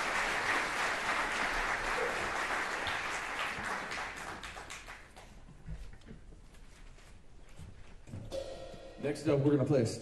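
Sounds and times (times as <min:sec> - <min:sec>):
faint band instrument sounds: 0:08.0 - 0:10.0.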